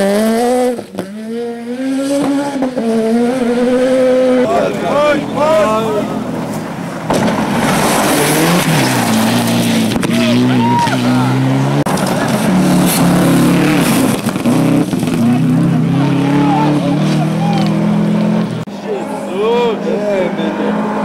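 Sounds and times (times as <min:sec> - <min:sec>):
rally car engines revving: 0:00.0 - 0:21.0.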